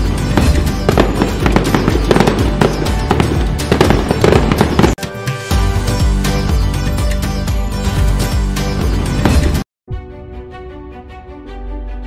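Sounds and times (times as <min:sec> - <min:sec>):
fireworks bangs and crackles: 0:00.0 - 0:05.0
background music: 0:00.0 - 0:12.0.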